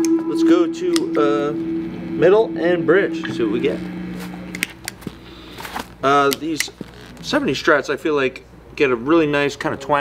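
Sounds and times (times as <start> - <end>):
electric guitar sustained note: 0.0 - 6.0.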